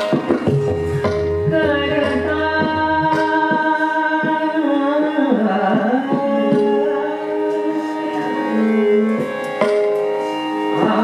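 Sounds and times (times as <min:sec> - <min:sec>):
harmonium: 0:00.0 - 0:11.0
tabla strokes: 0:00.0 - 0:11.0
woman singing classical vocals: 0:01.5 - 0:09.3.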